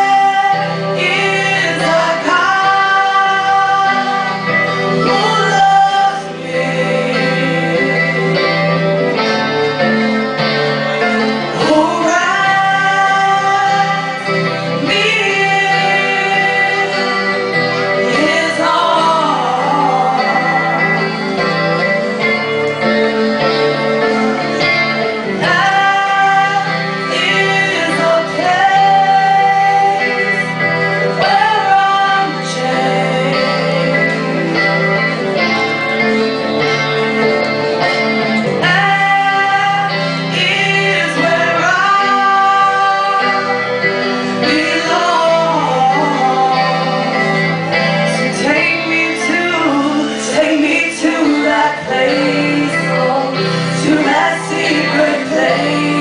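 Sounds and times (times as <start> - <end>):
women singing into microphones: 0.0 - 9.3, 10.9 - 35.8, 38.4 - 56.0
electric guitar: 0.0 - 56.0.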